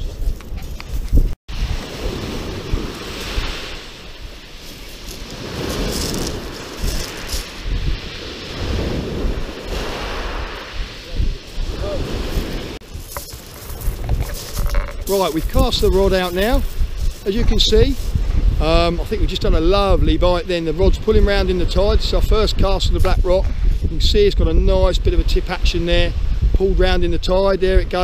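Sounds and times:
wind buffeting microphone: 0.0 - 28.0
waves breaking on shingle: 1.5 - 10.8, 12.0 - 17.3.

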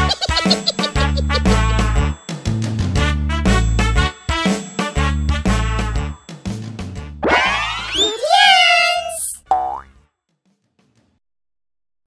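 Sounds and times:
springy boing tone sliding upward: 7.2 - 8.0.

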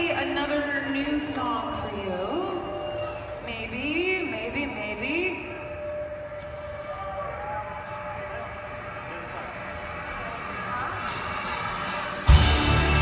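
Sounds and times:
crowd noise: 0.0 - 13.0.

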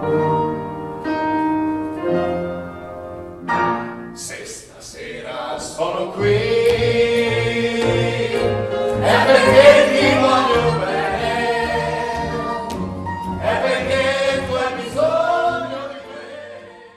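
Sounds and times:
bass accompaniment: 5.6 - 16.9.

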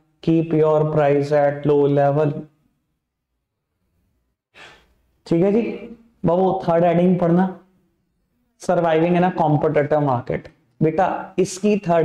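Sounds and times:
breath into a microphone: 4.5 - 5.0.

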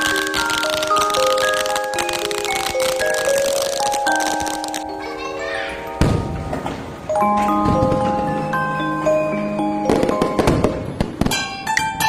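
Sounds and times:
firecrackers popping: 0.0 - 5.2, 9.8 - 11.9
music with long held notes: 0.0 - 12.0.

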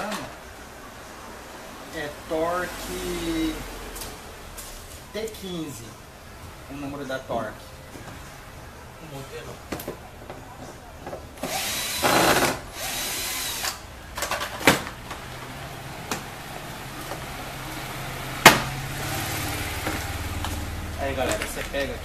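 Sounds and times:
loud rasping whirring tool: 11.4 - 13.8.

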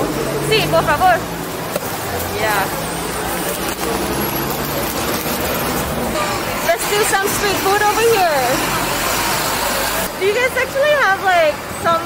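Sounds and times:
vehicle engine humming: 0.0 - 11.6
street traffic: 0.0 - 12.0.

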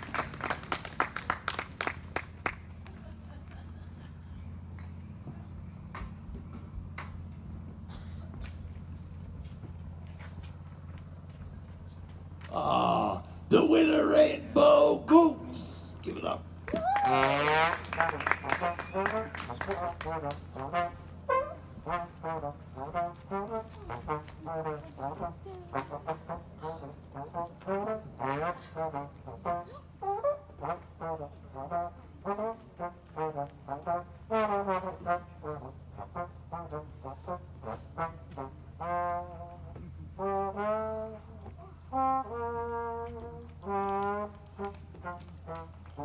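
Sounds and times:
brass instrument sliding honks: 13.1 - 46.0.

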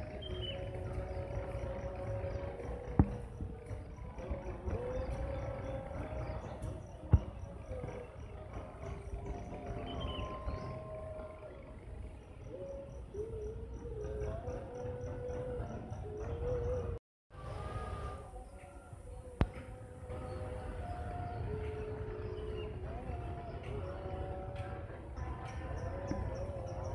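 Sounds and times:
low rumble: 0.0 - 26.8
faint wavering tones: 0.0 - 26.9.

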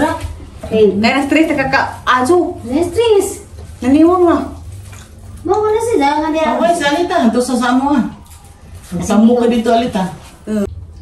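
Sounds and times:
woman speaking: 0.0 - 4.7, 5.4 - 8.2.

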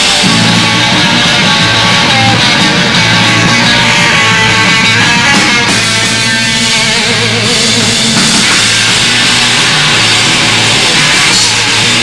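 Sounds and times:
drum kit: 0.0 - 12.0
electric guitar: 0.0 - 12.0.

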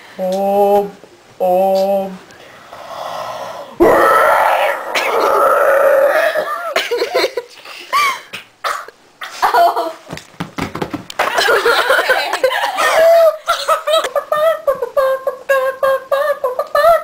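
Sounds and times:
person making retching noises: 3.8 - 6.8.

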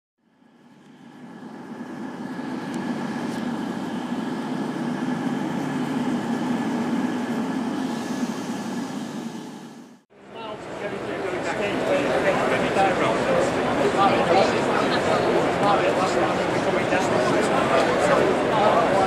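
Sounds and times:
faint steady whine: 0.2 - 19.0
train rumbling: 0.4 - 19.0.

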